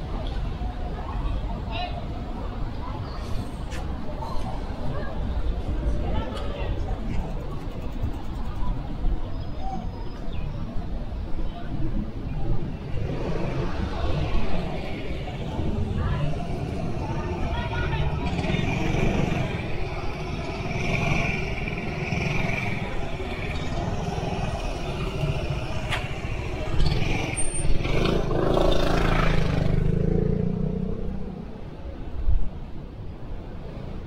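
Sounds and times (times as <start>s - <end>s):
passing cars and scooters: 0.0s - 34.0s
motor scooter passing close: 16.5s - 31.4s.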